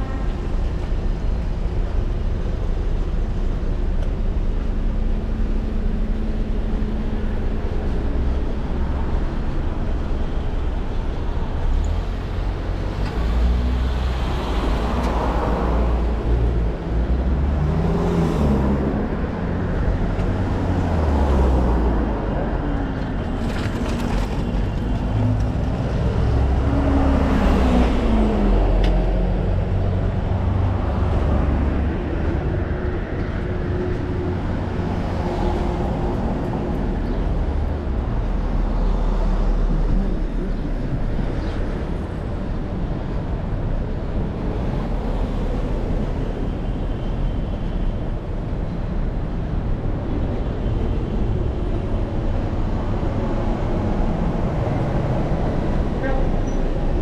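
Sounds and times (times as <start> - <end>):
low traffic rumble: 0.0 - 57.0
cars passing close by: 8.0 - 57.0.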